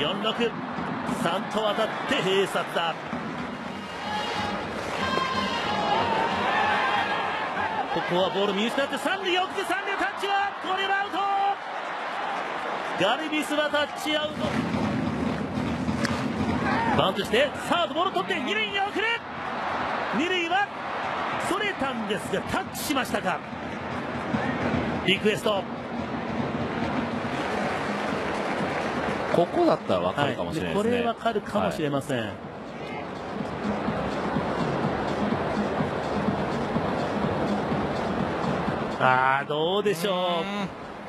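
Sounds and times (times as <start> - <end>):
cheering music: 0.0 - 31.6, 32.6 - 40.4
stadium crowd noise: 0.0 - 41.0.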